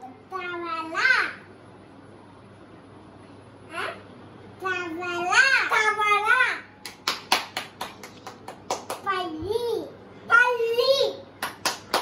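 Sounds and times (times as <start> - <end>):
sharp taps or claps: 6.8 - 9.2, 11.4 - 12.0.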